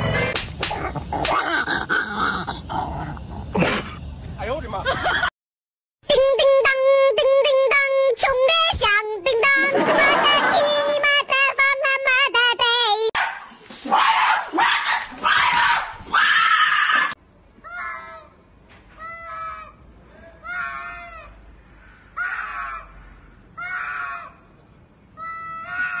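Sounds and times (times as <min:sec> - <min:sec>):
cats yowling: 0:25.2 - 0:26.0.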